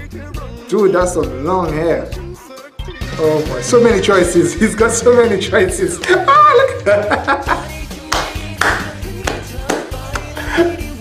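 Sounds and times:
man singing pop song: 0.0s - 11.0s
steady beat and bass line: 3.2s - 7.8s.

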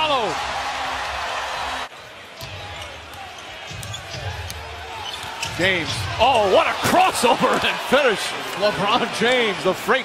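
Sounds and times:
murmur of arena crowd: 0.0s - 10.0s.

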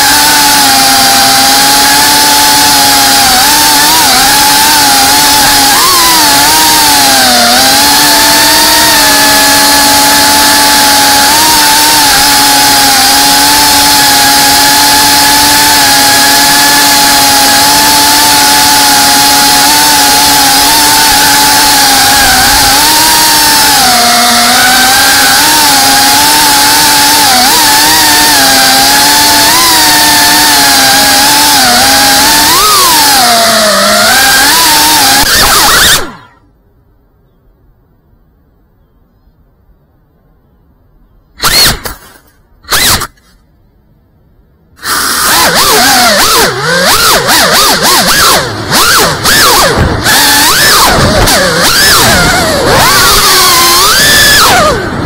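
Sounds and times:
quadcopter motors whining: 0.0s - 36.5s, 41.4s - 43.4s, 44.8s - 55.0s.

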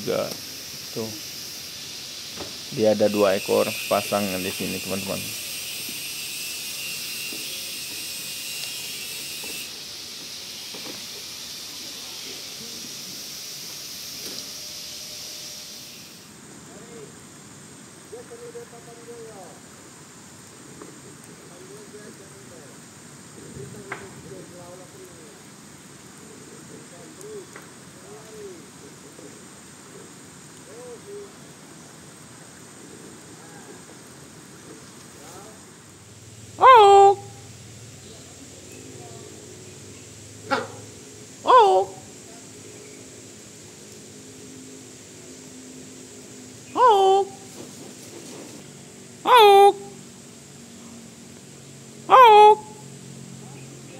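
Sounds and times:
high-pitched hiss: 0.0s - 53.9s
faint short calls: 36.6s - 37.6s, 40.4s - 42.2s, 46.7s - 47.9s, 49.2s - 50.0s, 52.1s - 52.8s.

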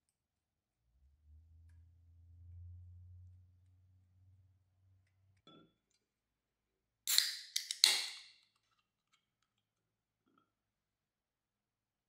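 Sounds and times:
can pull tab cracking: 7.1s - 8.3s.

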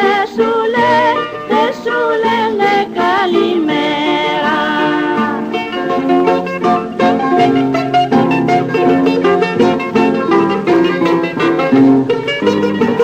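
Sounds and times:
bouzouki plucked run: 0.0s - 13.0s
strummed guitar chords: 0.0s - 13.0s.

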